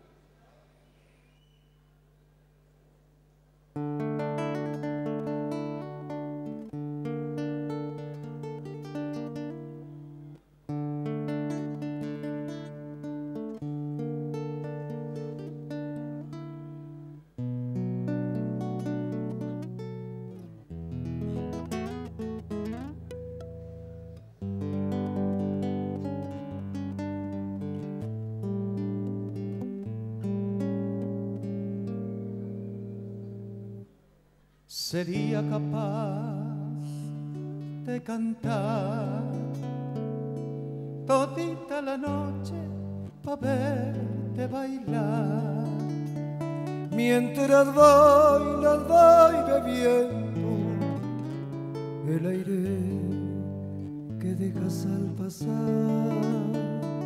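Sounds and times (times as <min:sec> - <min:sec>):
acoustic guitars playing: 0:03.7 - 0:57.0.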